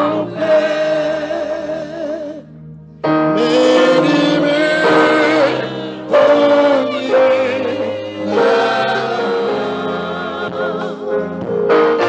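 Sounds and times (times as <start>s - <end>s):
choir singing gospel music: 0.0s - 2.5s, 3.2s - 12.0s.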